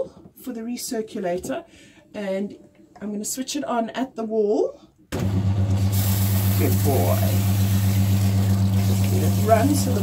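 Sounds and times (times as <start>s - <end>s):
electric pump humming: 5.2s - 10.0s.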